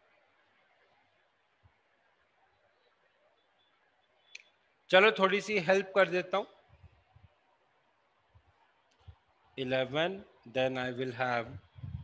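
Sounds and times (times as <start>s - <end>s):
man speaking: 4.9s - 6.6s, 9.6s - 11.6s.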